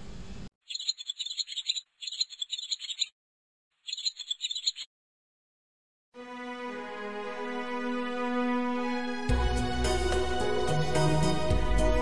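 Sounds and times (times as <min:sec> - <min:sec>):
high-pitched bird chirping trills: 0:00.6 - 0:03.1, 0:03.8 - 0:04.9.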